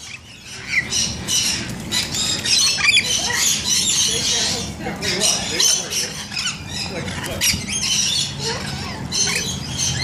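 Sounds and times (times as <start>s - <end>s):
lorikeets calling shrilly: 0.0s - 10.0s.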